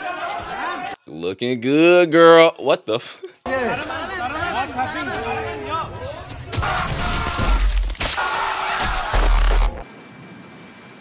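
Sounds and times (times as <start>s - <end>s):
tape static and glitch distortion: 9.0s - 9.8s.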